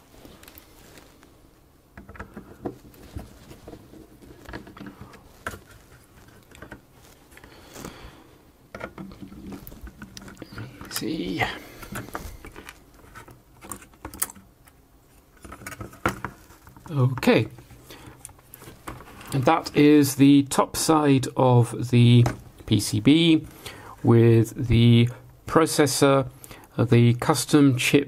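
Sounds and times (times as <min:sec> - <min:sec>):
clicks and scrapes of handling: 0:02.0 - 0:08.0, 0:08.7 - 0:19.5.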